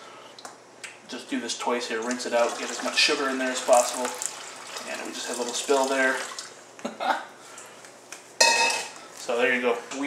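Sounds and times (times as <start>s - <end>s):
sugar water poured through funnel: 2.1s - 6.5s.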